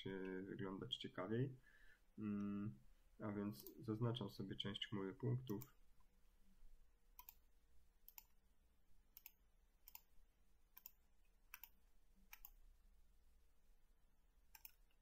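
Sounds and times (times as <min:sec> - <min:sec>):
faint computer mouse clicks: 0:07.2 - 0:07.4, 0:08.1 - 0:08.4, 0:09.2 - 0:10.1, 0:10.8 - 0:12.6, 0:14.5 - 0:15.0.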